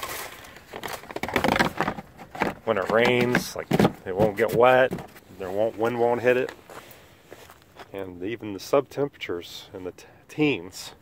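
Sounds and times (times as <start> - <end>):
plastic tote rustling and scraping: 0.0 - 6.6.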